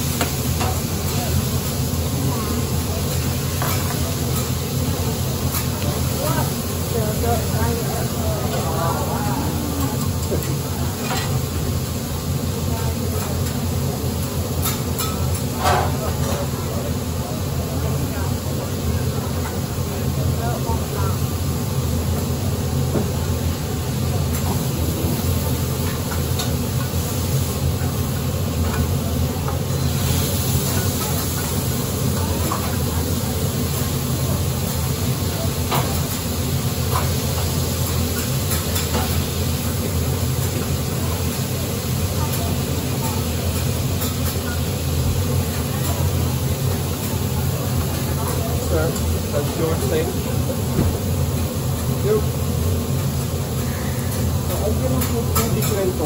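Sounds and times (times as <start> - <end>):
food sizzling on a hotplate: 0.0 - 56.0.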